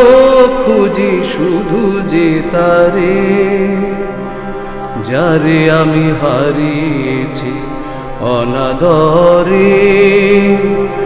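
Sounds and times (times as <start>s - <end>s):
man singing ornamented phrases: 0.0s - 4.3s, 5.0s - 11.0s
harmonium drone: 0.0s - 11.0s.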